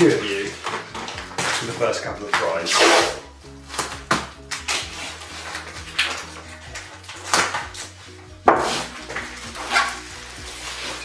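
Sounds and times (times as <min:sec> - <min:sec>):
plastic wrap rustling and crinkling: 0:00.0 - 0:03.0, 0:03.6 - 0:11.0
background music: 0:00.0 - 0:11.0.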